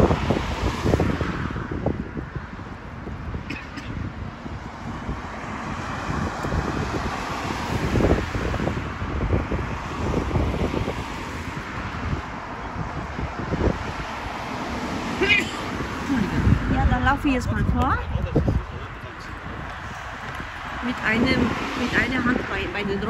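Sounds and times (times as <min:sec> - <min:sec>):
car traffic on road: 0:00.0 - 0:23.0
wind buffeting microphone: 0:00.0 - 0:23.0.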